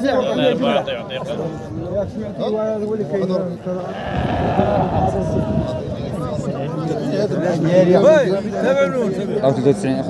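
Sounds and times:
sheep bleating: 0:03.8 - 0:05.8.

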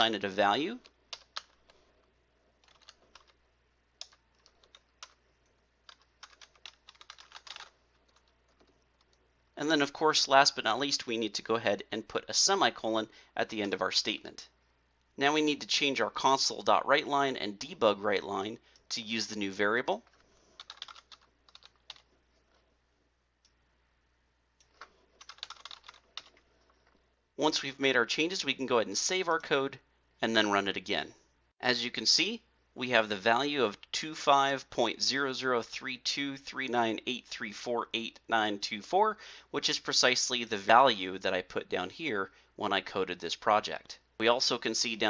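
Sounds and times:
typing on computer keyboard: 0:01.1 - 0:01.8, 0:02.6 - 0:03.4, 0:04.0 - 0:05.2, 0:05.8 - 0:09.2, 0:20.1 - 0:22.1, 0:24.7 - 0:26.4.

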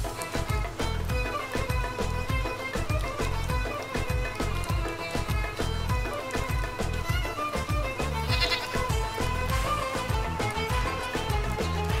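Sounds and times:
music with steady beat: 0:00.0 - 0:12.0
goat bleating: 0:07.2 - 0:09.2.

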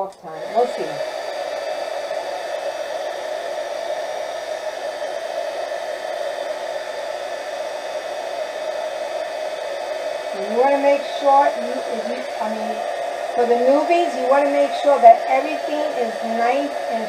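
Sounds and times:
heat gun blowing hum: 0:00.0 - 0:17.0.

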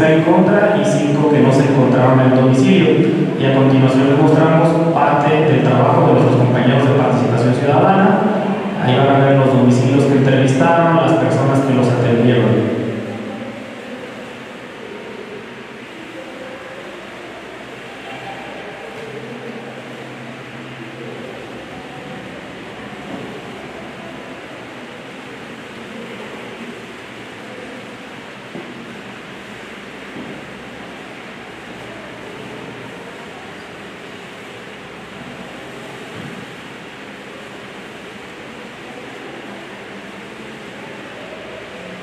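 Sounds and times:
electric fan hiss: 0:00.0 - 0:42.0.

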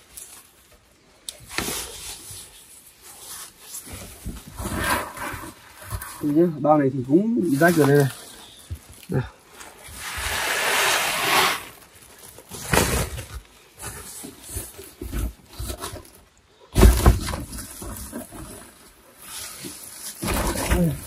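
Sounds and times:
plastic sacks rustling: 0:00.0 - 0:21.0
thud: 0:16.7 - 0:17.9.

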